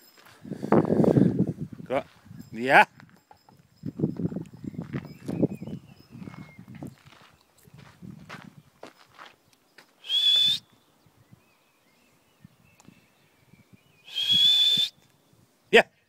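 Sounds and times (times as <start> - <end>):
footsteps on gravel: 4.1 - 10.0
faint bird chirps: 4.5 - 7.8, 8.6 - 15.4.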